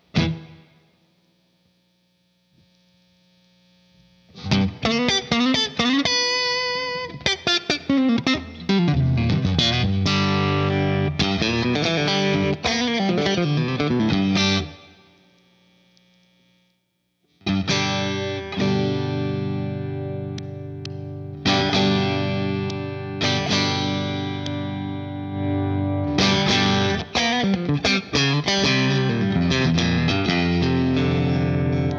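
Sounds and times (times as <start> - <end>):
electric guitar picked notes: 0.0 - 0.8, 4.3 - 15.0, 17.4 - 31.9
faint electrical hum: 0.0 - 31.9.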